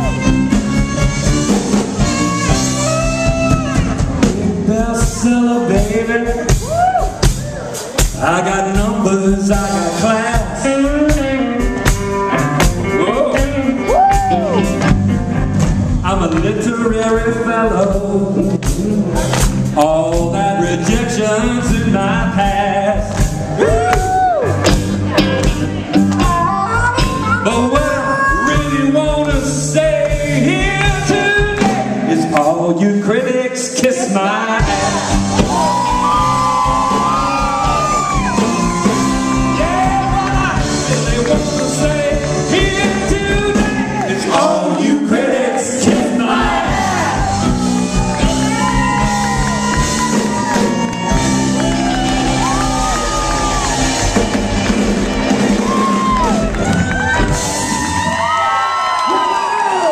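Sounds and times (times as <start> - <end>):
rock band playing: 0.0 - 59.8
crowd cheering and shouting: 1.7 - 15.5, 18.9 - 32.6, 33.8 - 59.9.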